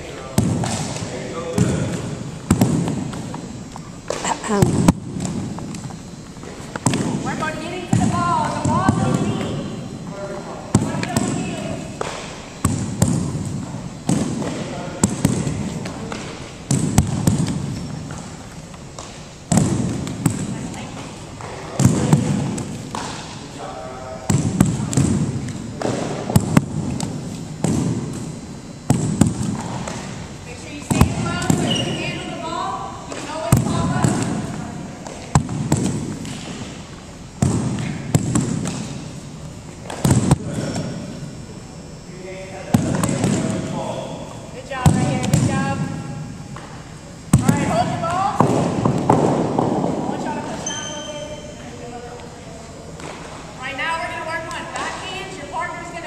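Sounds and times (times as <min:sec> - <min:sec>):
balls bouncing on gym floor: 0:00.0 - 0:23.6, 0:24.2 - 0:41.4, 0:42.6 - 0:56.0
balls smacking into leather gloves: 0:00.3 - 0:07.3, 0:10.7 - 0:23.4, 0:24.2 - 0:28.3, 0:28.9 - 0:30.2, 0:33.1 - 0:39.2, 0:39.8 - 0:41.0, 0:48.4 - 0:50.1.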